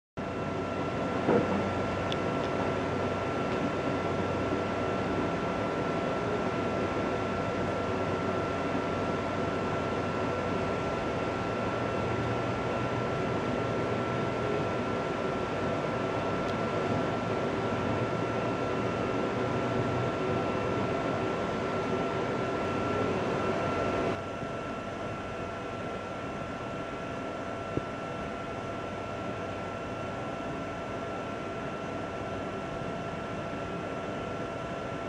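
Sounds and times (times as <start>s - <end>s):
thin steady whine: 0.2s - 35.0s.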